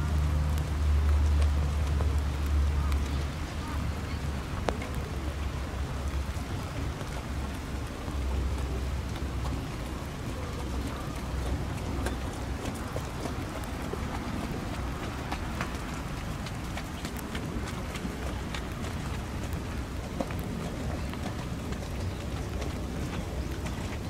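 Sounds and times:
raindrop ticks: 0.0 - 24.0
steady rainfall: 0.0 - 24.0.

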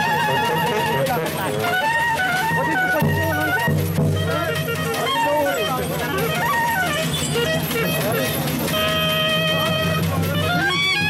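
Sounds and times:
brass band playing: 0.0 - 11.0
wind instrument trilling: 0.0 - 11.0.

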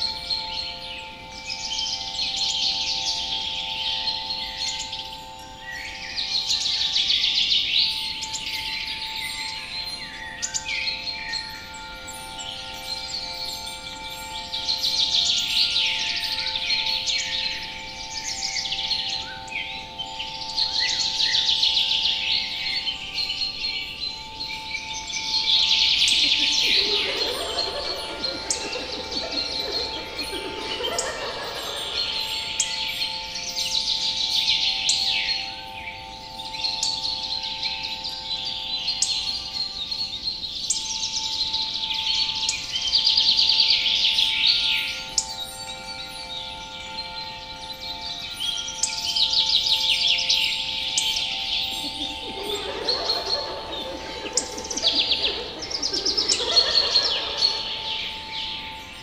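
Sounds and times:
birds singing: 0.0 - 59.0
chime-like tinkle: 0.0 - 59.0
steady drone of held tones: 8.1 - 38.7, 44.9 - 59.0.

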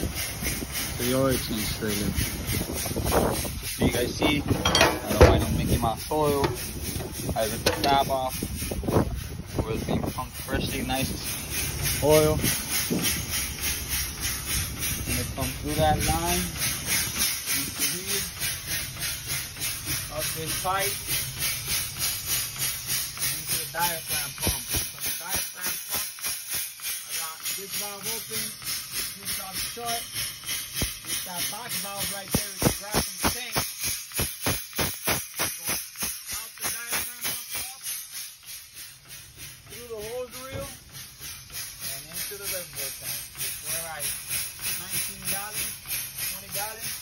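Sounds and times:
pump exhaust hissing: 0.0 - 47.0.

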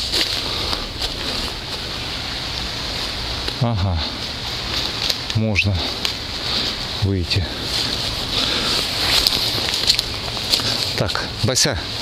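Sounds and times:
background hiss: 0.0 - 12.0
footsteps crunching dry leaves: 0.0 - 12.0.

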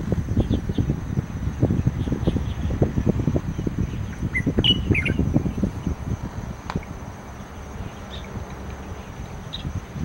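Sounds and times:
bird high chirps: 3.5 - 5.7.

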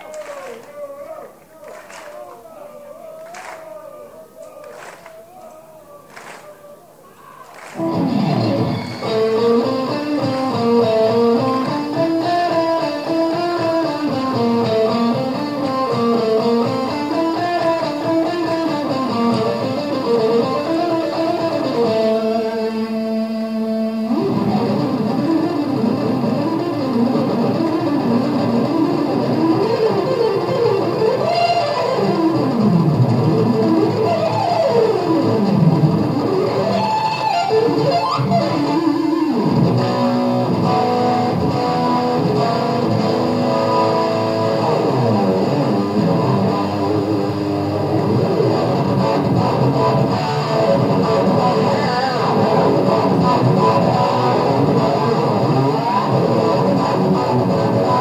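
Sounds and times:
electric guitar fast runs: 7.6 - 12.3.

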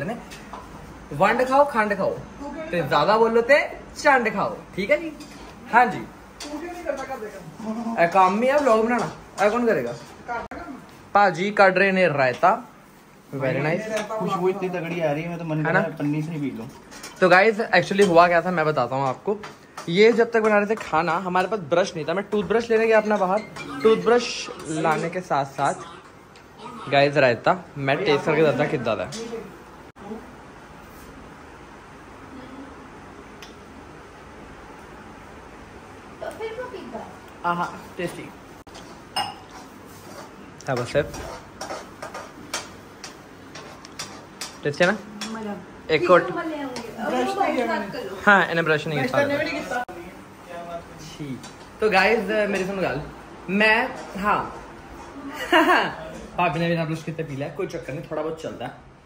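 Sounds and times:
kitchen background noise: 0.0 - 59.0.

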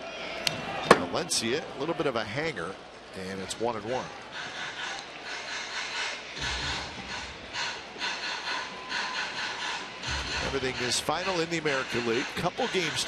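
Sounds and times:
crowd hubbub: 0.0 - 13.0.

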